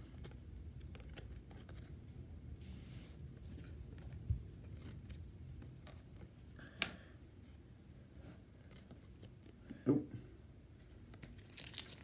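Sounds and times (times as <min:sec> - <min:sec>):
cards clicking and rustling: 0:00.0 - 0:01.9.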